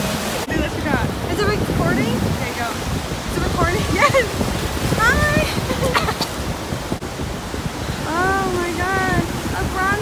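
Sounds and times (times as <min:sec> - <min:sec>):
ocean surf washing in: 0:00.0 - 0:10.0
wind buffeting microphone: 0:00.0 - 0:10.0.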